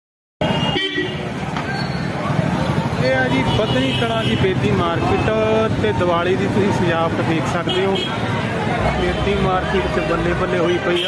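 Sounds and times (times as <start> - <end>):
vehicle horn toot: 0.4 - 1.2
traffic: 0.4 - 11.0
voices: 1.2 - 11.0.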